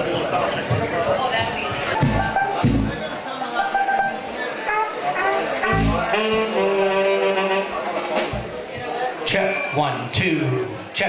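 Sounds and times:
room chatter: 0:00.0 - 0:11.0
heavy low thumps: 0:02.0 - 0:03.1, 0:05.6 - 0:06.5
horn notes: 0:02.0 - 0:03.1, 0:03.7 - 0:08.5.

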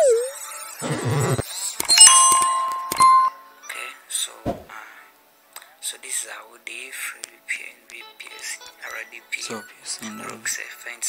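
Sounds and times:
bell-like ding chime: 0:01.9 - 0:03.5.

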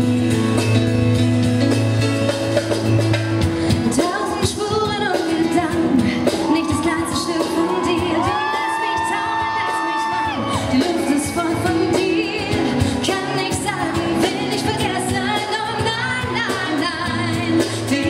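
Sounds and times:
band with acoustic guitar: 0:00.0 - 0:18.0
woman singing pop ballad: 0:03.7 - 0:18.0.

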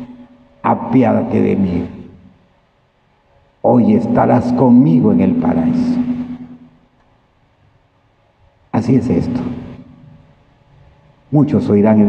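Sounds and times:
man speaking into a microphone: 0:00.0 - 0:02.2, 0:03.6 - 0:06.4, 0:08.7 - 0:10.0, 0:11.3 - 0:12.0
faint background hiss: 0:00.0 - 0:12.0.

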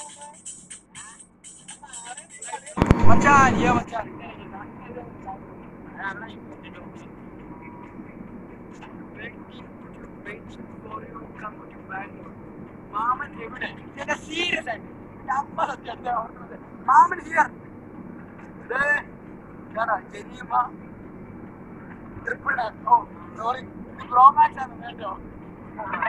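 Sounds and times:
men talking and calling out: 0:01.8 - 0:26.0.

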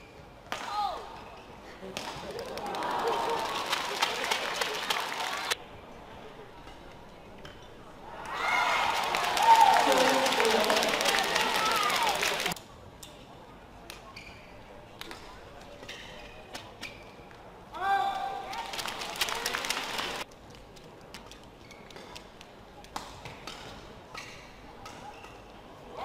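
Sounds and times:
crowd cheering and applause: 0:02.4 - 0:05.6, 0:08.3 - 0:12.6, 0:18.5 - 0:20.2.

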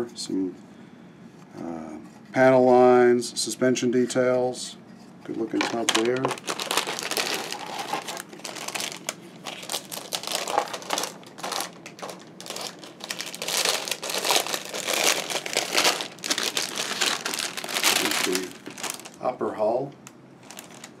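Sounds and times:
plastic bag crinkling: 0:05.4 - 0:19.4, 0:20.4 - 0:21.0.

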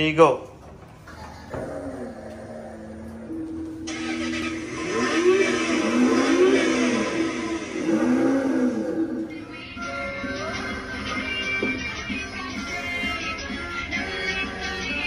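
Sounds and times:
recorded engine revving: 0:03.0 - 0:09.4.

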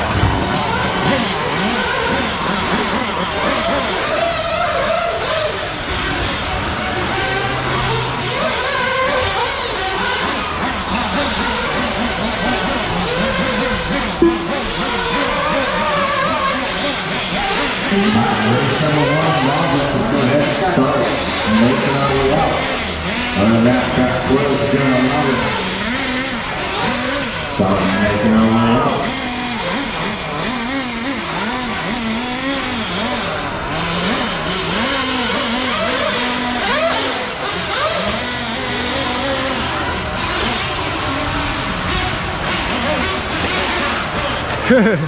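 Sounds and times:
model car engines revving: 0:00.0 - 0:45.0
voices in a large hall: 0:00.0 - 0:45.0.

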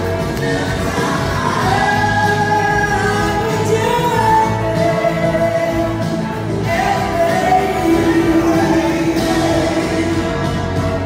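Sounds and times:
harmony singers: 0:00.0 - 0:11.0
live soul-rock band playing: 0:00.0 - 0:11.0
woman singing lead: 0:00.0 - 0:11.0.

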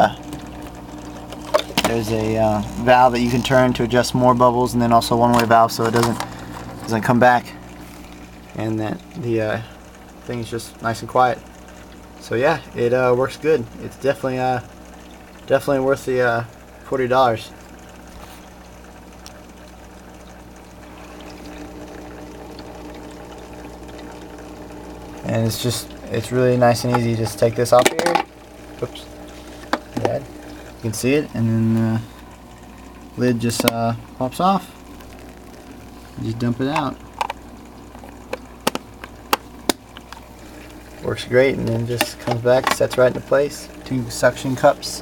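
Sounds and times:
pump humming: 0:00.0 - 0:45.0
water and air bubbles churning: 0:00.0 - 0:45.0.

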